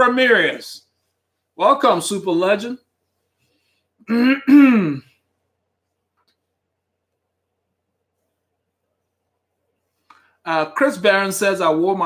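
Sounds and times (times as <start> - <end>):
man clearing his throat: 4.0 - 5.2.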